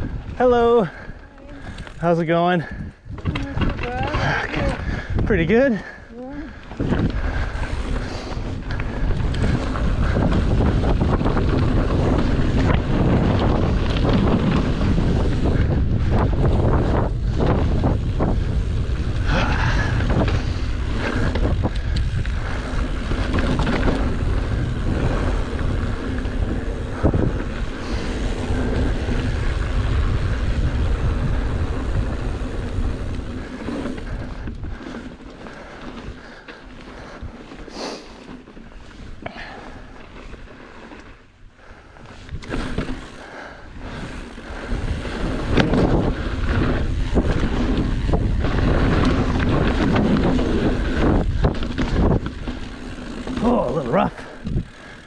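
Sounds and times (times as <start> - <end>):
wind buffeting microphone: 0.0 - 37.6, 41.1 - 55.0
bike clicks and knocks: 3.1 - 4.2, 20.1 - 24.7, 42.1 - 43.2.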